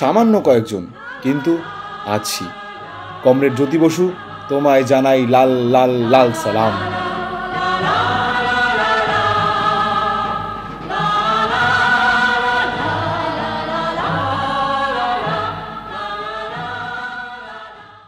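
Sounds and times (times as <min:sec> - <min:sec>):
choir singing long held notes: 0:00.0 - 0:18.0.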